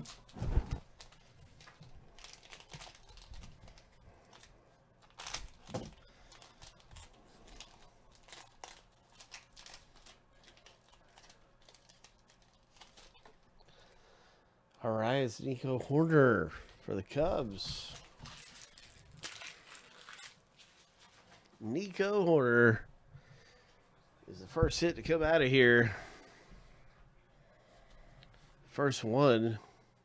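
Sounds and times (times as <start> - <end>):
plastic wrapper tearing and crinkling: 0.0 - 13.5, 17.8 - 21.4.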